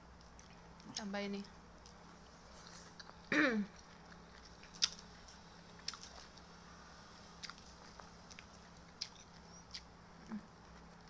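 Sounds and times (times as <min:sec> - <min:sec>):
faint steady hum: 0:00.0 - 0:11.0
person chewing food: 0:01.8 - 0:06.6, 0:07.4 - 0:11.0.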